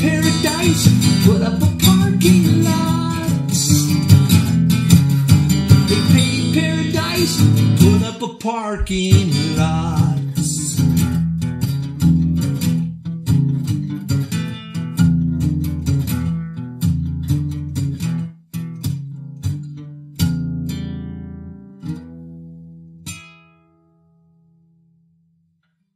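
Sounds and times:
acoustic guitar strumming: 0:00.0 - 0:24.4.

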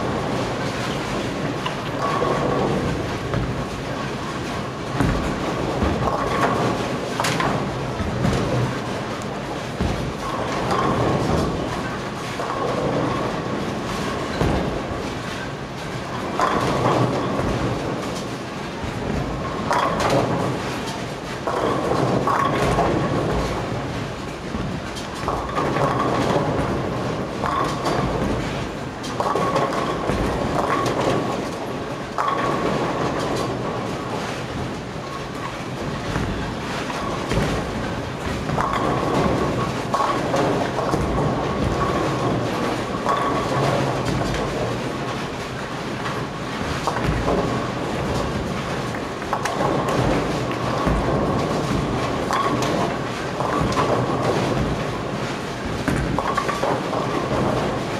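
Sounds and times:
bowling balls rolling on lanes: 0:00.0 - 0:57.9.

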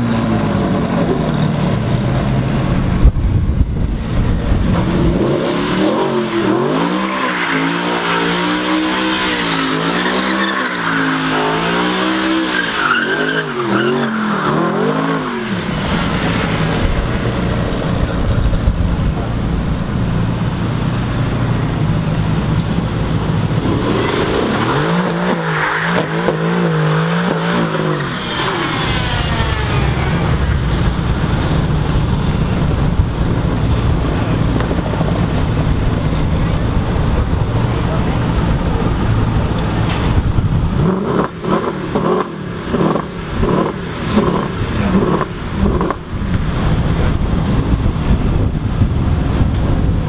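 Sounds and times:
another car engine: 0:00.0 - 0:50.0
car engine at high revs: 0:00.0 - 0:50.0.

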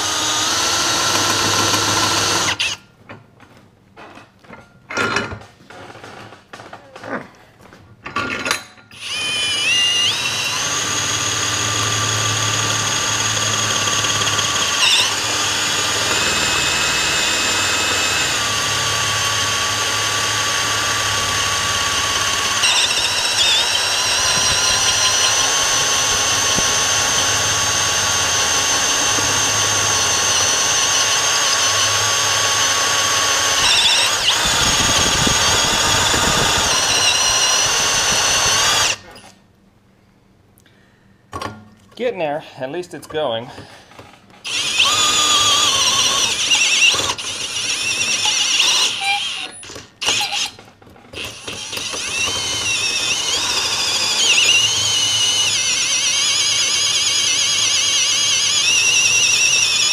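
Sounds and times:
drill bit squealing cutting steel: 0:08.9 - 0:39.3, 0:44.5 - 0:50.6, 0:51.2 - 0:59.9.

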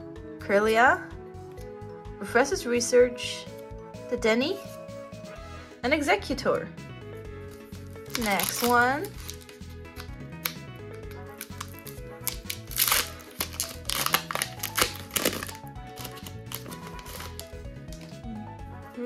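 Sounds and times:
background music: 0:00.0 - 0:19.0
foil wrapper crinkling and tearing: 0:07.5 - 0:18.2.

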